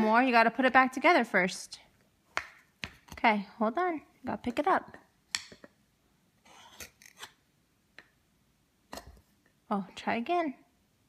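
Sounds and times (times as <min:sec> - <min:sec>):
wooden toy knife scraping: 0:06.4 - 0:07.4.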